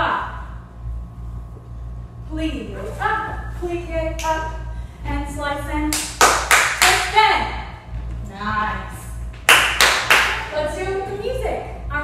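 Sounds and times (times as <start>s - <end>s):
people clapping: 5.9s - 7.0s, 9.4s - 10.5s.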